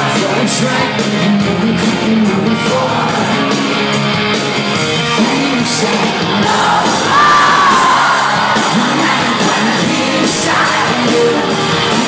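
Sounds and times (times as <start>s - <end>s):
fans screaming and cheering: 0.0s - 12.0s
live rock band playing: 0.0s - 12.0s
high held cry: 6.4s - 9.8s.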